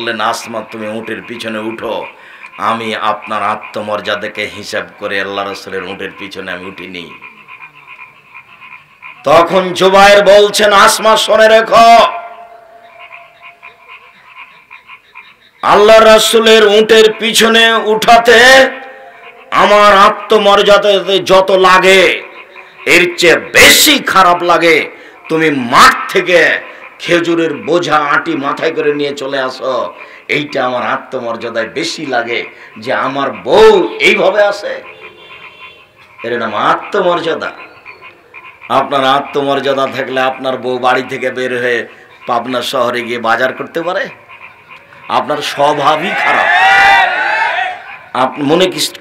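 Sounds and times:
man speaking into a microphone: 0.0s - 7.3s, 9.2s - 12.4s, 15.6s - 34.9s, 36.2s - 37.6s, 38.7s - 44.2s, 45.0s - 46.5s, 48.1s - 49.0s
echoing amplified voice: 0.0s - 8.0s, 8.6s - 14.4s, 15.6s - 46.6s, 47.5s - 49.0s
faint rapid pulsed calls: 0.0s - 49.0s.

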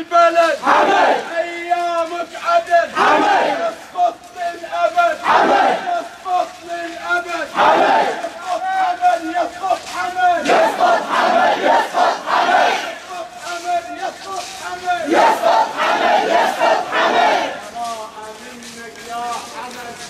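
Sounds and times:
protesters chanting call and response: 0.0s - 20.0s
group shouting: 0.6s - 1.3s, 2.9s - 3.8s, 5.2s - 5.9s, 7.5s - 8.3s, 10.4s - 13.0s, 15.1s - 17.6s.

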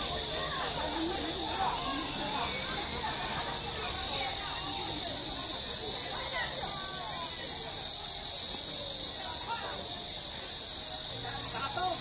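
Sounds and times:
insects droning: 0.0s - 12.0s
people chattering: 0.0s - 12.0s.

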